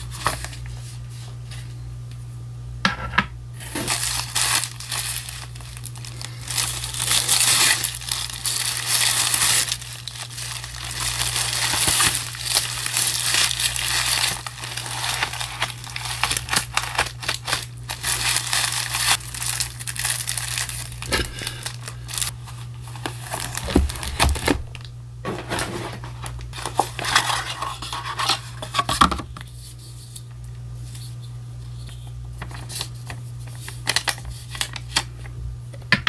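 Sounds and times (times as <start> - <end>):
paper and packaging crinkling: 0.0 - 1.7, 3.6 - 31.2, 32.4 - 35.2.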